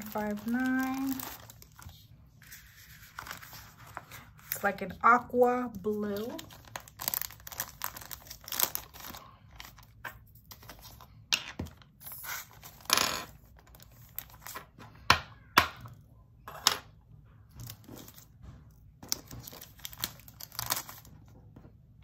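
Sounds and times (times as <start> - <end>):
plastic bag crinkling: 0.0 - 2.1, 5.9 - 10.0, 19.1 - 21.2.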